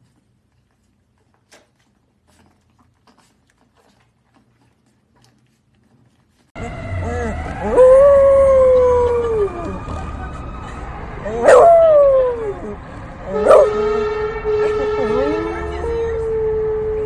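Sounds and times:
dog howling: 0:06.9 - 0:09.8, 0:11.2 - 0:13.7.

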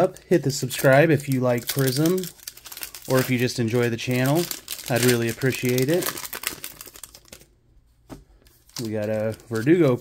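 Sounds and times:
foil wrapper crinkling: 0:00.6 - 0:07.5, 0:08.5 - 0:10.0.

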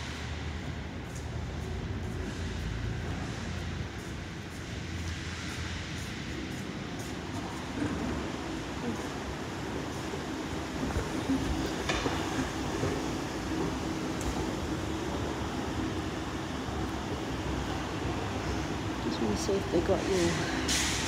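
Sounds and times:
moving walkway hum and rumble: 0:00.0 - 0:21.0.

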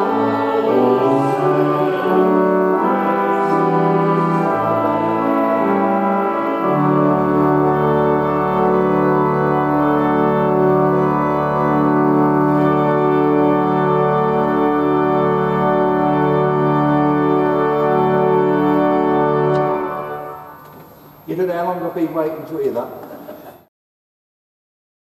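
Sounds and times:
pipe organ playing chords: 0:00.0 - 0:23.6.

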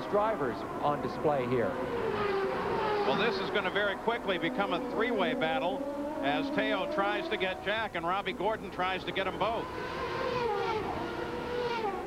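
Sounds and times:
racing car engines at high revs: 0:00.0 - 0:12.0.

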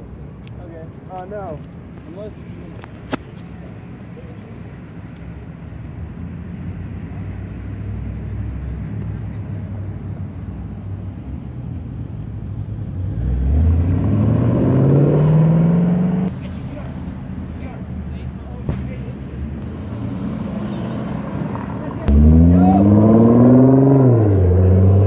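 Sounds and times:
car engine revving: 0:12.7 - 0:25.0.

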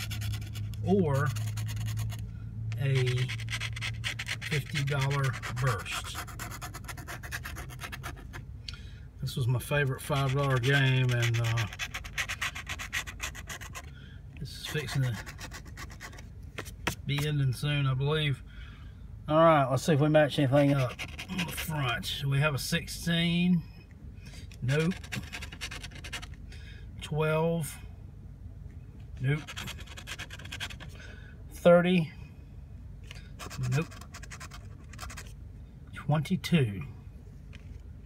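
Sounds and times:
scraping lottery ticket: 0:00.0 - 0:08.4, 0:09.6 - 0:13.9, 0:14.5 - 0:16.8, 0:20.5 - 0:22.0, 0:24.6 - 0:26.4, 0:29.2 - 0:31.0, 0:33.2 - 0:35.4.

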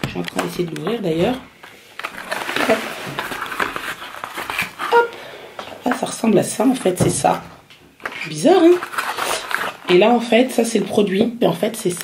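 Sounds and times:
cardboard box flaps crinkling: 0:02.0 - 0:05.0.

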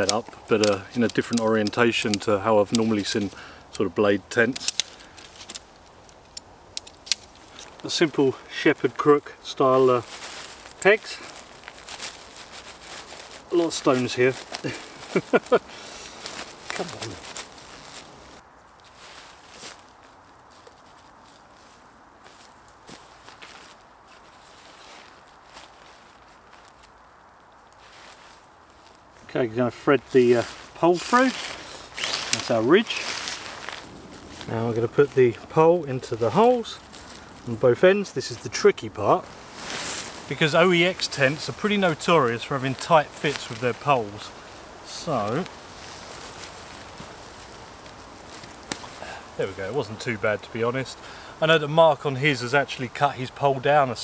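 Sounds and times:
tent pole click: 0:00.0 - 0:03.8, 0:04.4 - 0:07.8, 0:30.4 - 0:34.5, 0:39.6 - 0:49.0
footsteps on dry leaves: 0:00.0 - 0:54.0
tent fabric rustling: 0:06.9 - 0:54.0.

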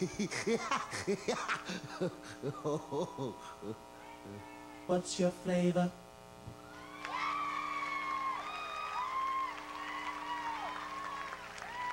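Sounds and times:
audience cheering and screaming: 0:06.6 - 0:11.9.

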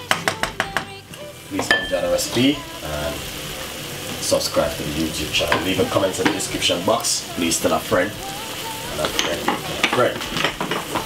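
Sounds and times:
vegetables sizzling in a wok: 0:00.0 - 0:11.0
crackles and pops: 0:03.4 - 0:11.0.

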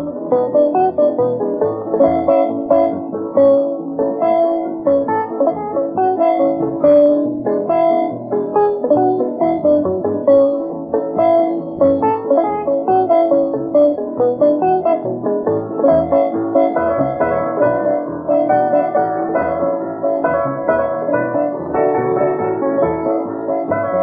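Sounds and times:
fast instrumental country tune: 0:00.0 - 0:24.0.

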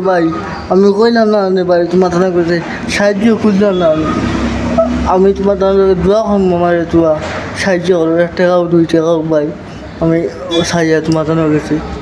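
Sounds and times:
man talking: 0:00.0 - 0:12.0
motor vehicle rumbling past: 0:02.1 - 0:07.7.

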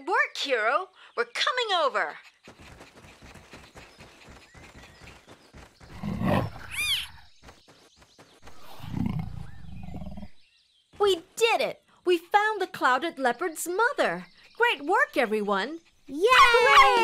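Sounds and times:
faint rustling and patter: 0:02.2 - 0:05.9
big cat growling: 0:08.6 - 0:10.4.

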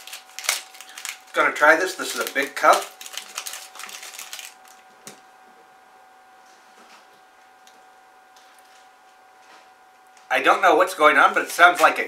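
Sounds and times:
candy wrapper crinkling and tearing: 0:00.0 - 0:04.8.

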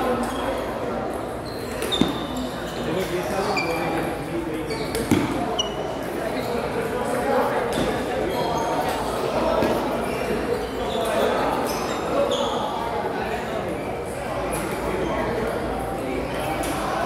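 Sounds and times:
murmur of voices: 0:00.0 - 0:17.0.

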